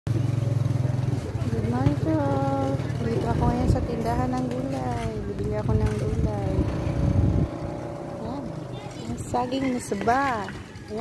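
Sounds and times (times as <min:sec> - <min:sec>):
vehicle engine idling: 0:00.1 - 0:09.3.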